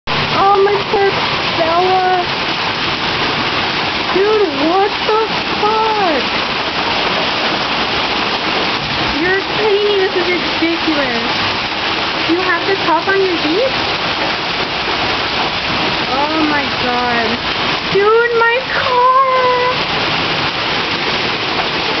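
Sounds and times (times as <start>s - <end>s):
hail and rain falling hard: 0.1s - 22.0s.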